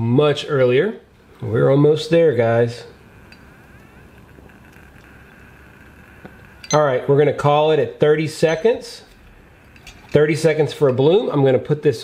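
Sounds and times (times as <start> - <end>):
alcohol stove hissing: 1.0 - 12.0.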